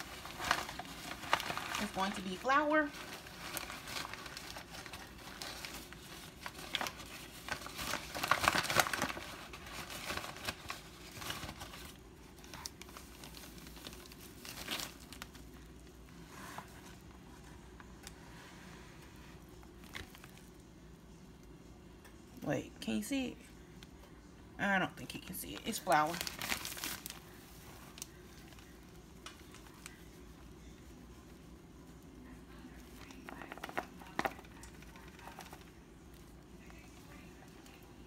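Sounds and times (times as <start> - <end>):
plastic bag crinkling: 0.0 - 15.9, 19.7 - 20.6, 25.1 - 30.2.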